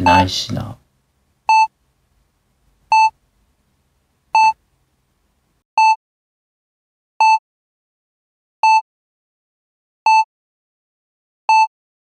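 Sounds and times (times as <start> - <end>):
short electronic beeps: 2.9 - 3.2, 4.4 - 4.6.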